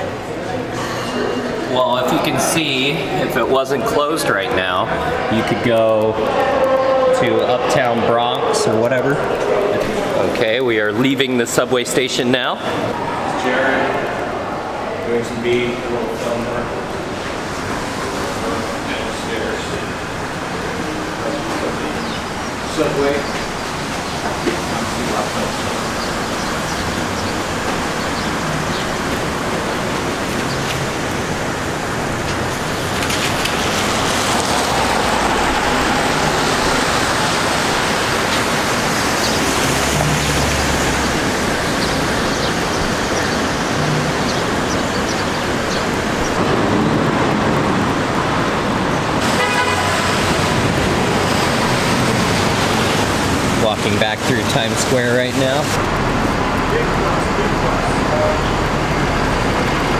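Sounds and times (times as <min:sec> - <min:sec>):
traffic on wet road: 0:00.0 - 0:59.9
voices of passers-by: 0:00.0 - 0:59.9
car horn honking: 0:49.2 - 0:50.7.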